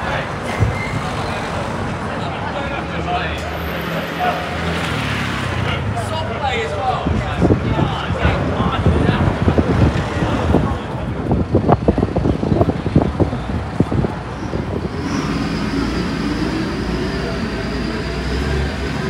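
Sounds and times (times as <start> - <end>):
vehicle engine rumbling: 0.0 - 19.0.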